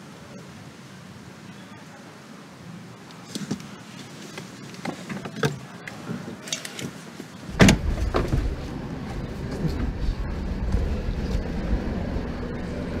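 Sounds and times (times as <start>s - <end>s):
car engine rumbling: 7.2s - 13.0s
car door slamming: 7.5s - 8.7s.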